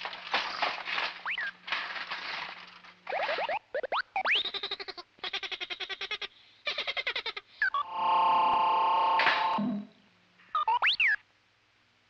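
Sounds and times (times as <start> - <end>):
buzzy tone: 7.8 - 9.9
robot warbling beeps: 9.4 - 9.9, 10.6 - 11.2.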